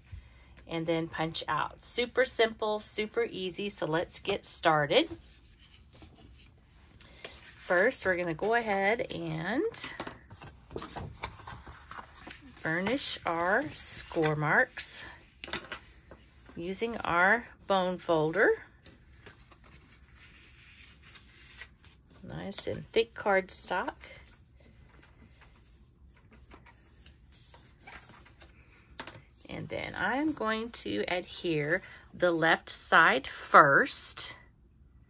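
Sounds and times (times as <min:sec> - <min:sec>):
cardstock rustling and sliding: 0:07.2 - 0:24.3.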